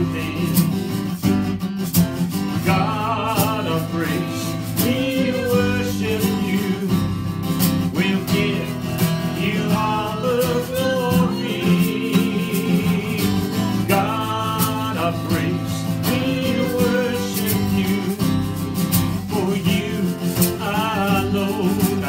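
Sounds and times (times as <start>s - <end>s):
man singing slow song: 0.0s - 1.0s, 2.6s - 7.2s, 7.8s - 18.4s, 19.2s - 22.0s
acoustic guitar strumming: 0.0s - 22.0s.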